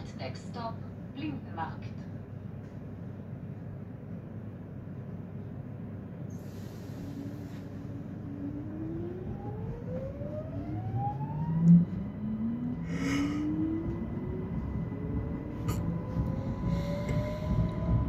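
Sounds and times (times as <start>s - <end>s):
train running gear rumble: 0.0s - 18.0s.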